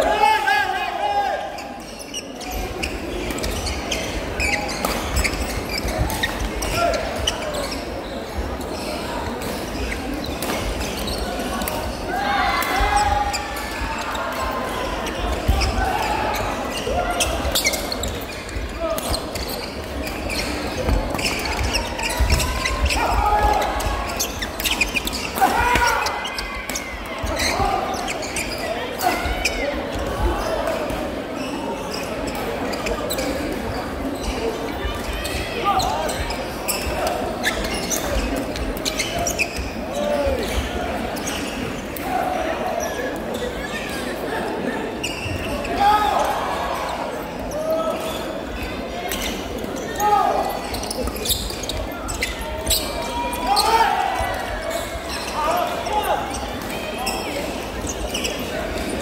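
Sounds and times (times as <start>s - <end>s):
murmur of voices: 0.0s - 59.0s
shoe squeaks on court floor: 1.4s - 42.1s, 42.7s - 59.0s.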